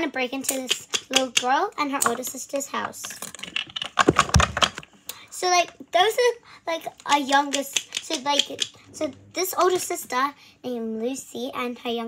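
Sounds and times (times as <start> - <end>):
handling noise clicks and rustles: 0.5 - 4.9, 7.0 - 8.8.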